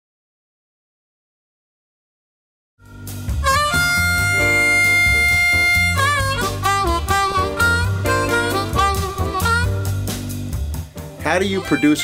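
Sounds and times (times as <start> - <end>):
harmonica bending notes: 2.8 - 10.5
low accompaniment: 2.8 - 12.0.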